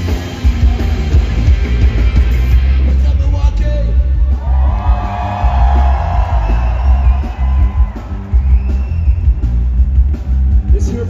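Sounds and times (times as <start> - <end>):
punk rock band playing live: 0.0 - 11.0.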